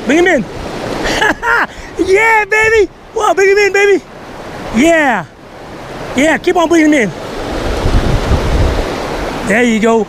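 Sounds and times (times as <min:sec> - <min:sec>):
river water rushing over rocks: 0:00.0 - 0:10.0
wind buffeting microphone: 0:07.2 - 0:09.5.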